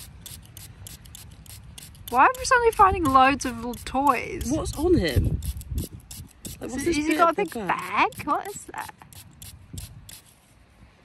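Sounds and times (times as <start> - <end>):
fingers rubbing a small toy: 0.0 - 10.5.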